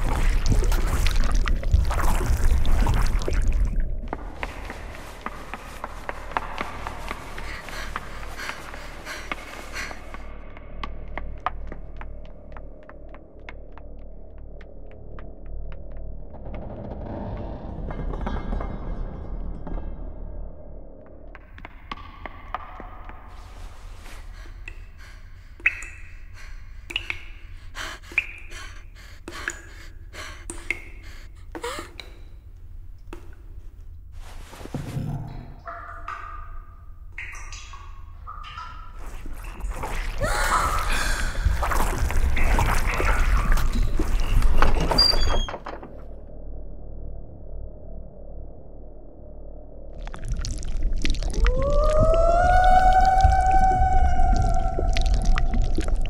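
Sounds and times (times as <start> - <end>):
low rumble: 0.0 - 25.2, 38.2 - 56.0
girl gasping tearful breaths: 27.7 - 32.1, 40.2 - 41.6.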